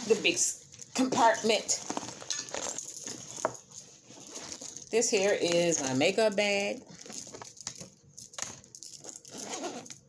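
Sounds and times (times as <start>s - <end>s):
rummaging in a handbag: 0.0s - 10.0s
small items clinking: 0.0s - 10.0s.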